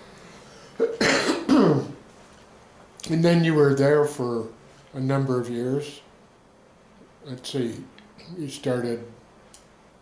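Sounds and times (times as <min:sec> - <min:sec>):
person clearing throat: 0:00.8 - 0:02.0.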